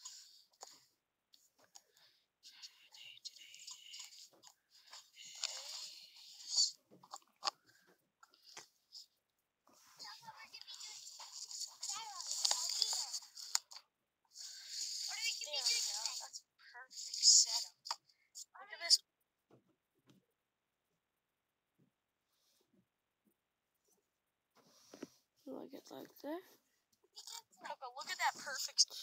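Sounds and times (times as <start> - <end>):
voices talking: 2.4 - 7.6, 9.9 - 19.0, 27.2 - 29.0
crackly hiss: 2.6 - 6.8, 10.1 - 18.1.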